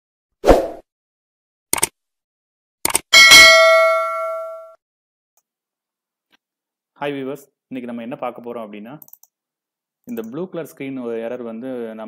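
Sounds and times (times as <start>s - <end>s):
bell-like ding: 3.2s - 4.8s.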